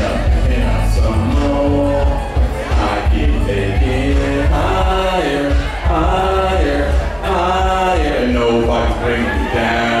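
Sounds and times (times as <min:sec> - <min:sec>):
backing track bass: 0:00.0 - 0:10.0
man singing into microphone: 0:00.0 - 0:10.0.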